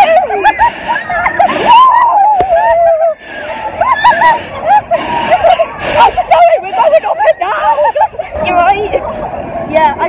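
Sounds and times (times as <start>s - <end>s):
girls squealing and calling out: 0.0s - 9.0s.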